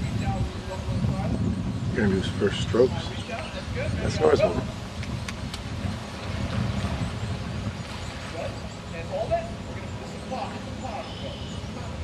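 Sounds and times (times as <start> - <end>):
faint distant voices: 8.0 - 12.0.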